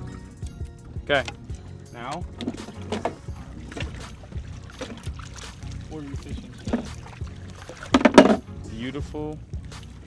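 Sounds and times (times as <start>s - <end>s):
water sloshing: 1.3s - 8.6s
net knocking against well: 6.5s - 8.5s.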